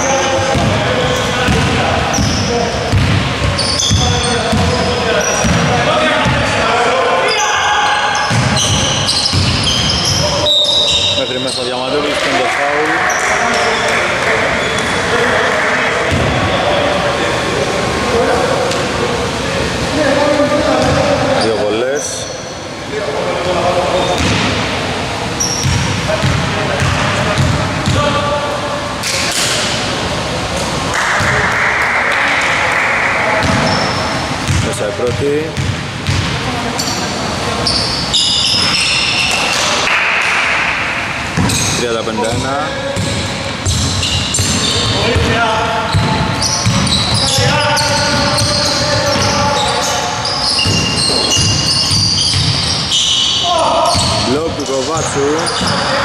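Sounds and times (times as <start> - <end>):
players' voices echoing: 0.0 - 56.0
basketball bouncing on wooden floor: 1.5 - 4.8, 8.3 - 9.7, 46.0 - 48.5.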